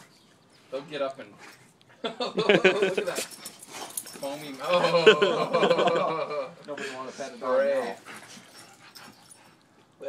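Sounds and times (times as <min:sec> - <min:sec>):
dogs playing: 0:00.0 - 0:10.0.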